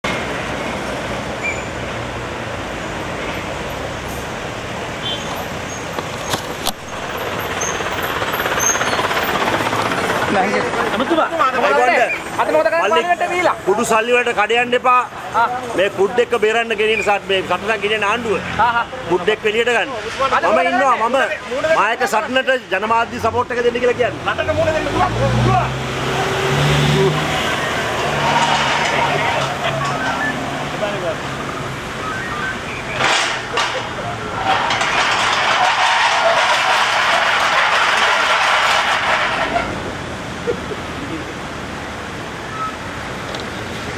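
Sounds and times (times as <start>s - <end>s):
road traffic noise: 0.0s - 43.9s
bus engine running: 2.0s - 12.7s.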